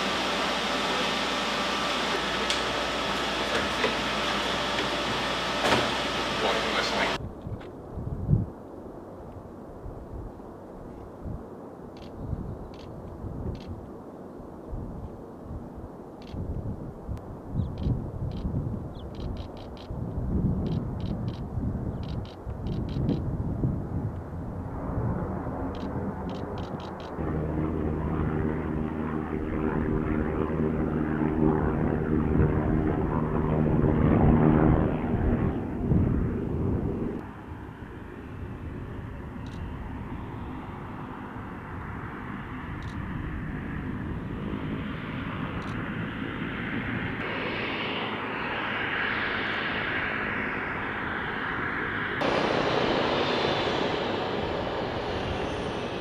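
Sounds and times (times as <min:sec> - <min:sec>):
hissing turbine whine: 0:00.0 - 0:07.2, 0:24.6 - 0:56.0
propeller aircraft engine droning: 0:00.0 - 0:56.0.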